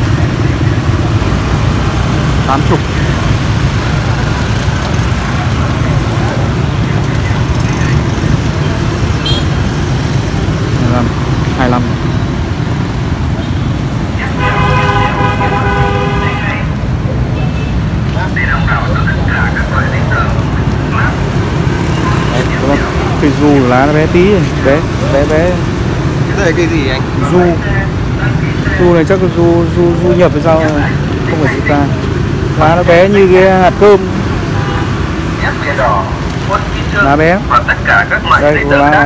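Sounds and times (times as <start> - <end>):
traffic engines rumbling: 0.0 - 39.0
vehicle horn: 9.2 - 9.6, 14.3 - 16.6.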